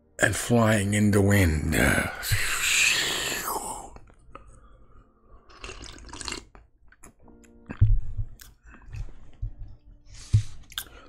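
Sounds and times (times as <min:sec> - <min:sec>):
man slurping a drink: 0:05.5 - 0:06.6
sipping and swallowing: 0:05.5 - 0:08.6.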